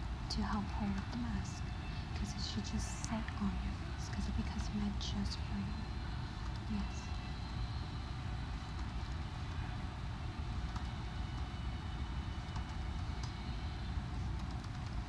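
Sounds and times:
low background rumble: 0.0 - 15.0.

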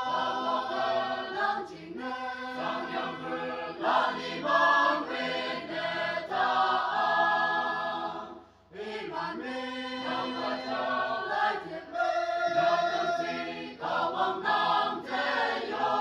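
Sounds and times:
choir singing: 0.0 - 16.0.

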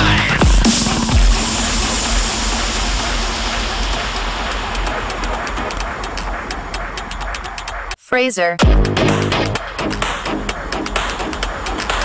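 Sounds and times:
low bass drone: 0.0 - 8.0, 8.6 - 12.0
high electronic ticks: 0.6 - 8.0.

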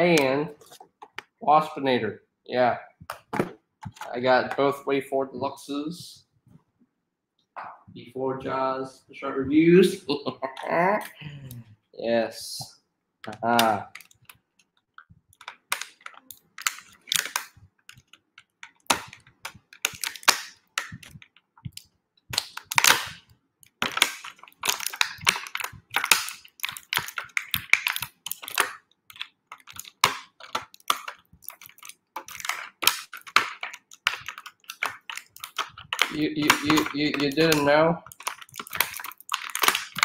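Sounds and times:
plastic packaging crinkling: 13.2 - 40.0.

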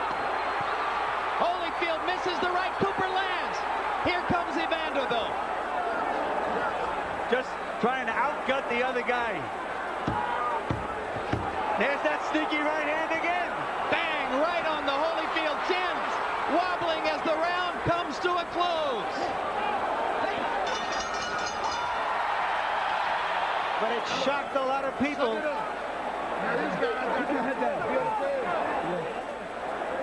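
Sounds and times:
crowd shouting and yelling: 0.0 - 30.0
gloved punches thudding: 10.0 - 11.7.

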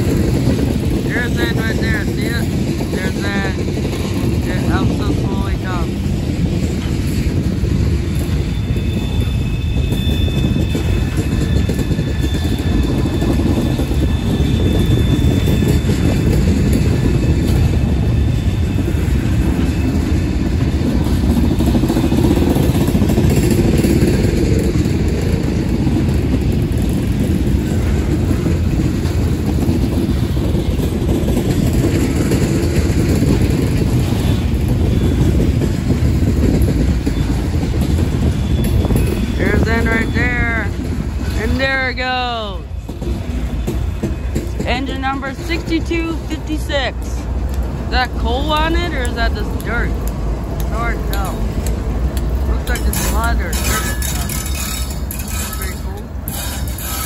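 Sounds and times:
train wheels rumbling on rails: 0.0 - 57.0.

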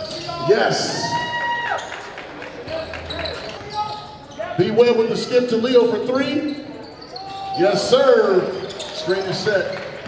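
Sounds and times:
voices in a gym: 0.0 - 10.0.

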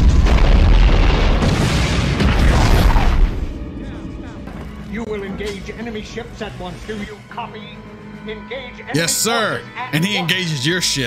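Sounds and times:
deep boom of explosions: 0.0 - 3.9.

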